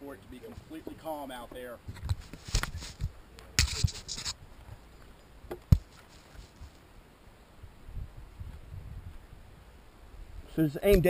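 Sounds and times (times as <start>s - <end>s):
microphone handling noise: 1.8s - 4.8s, 5.4s - 6.8s
wind rumble on microphone: 7.6s - 11.0s.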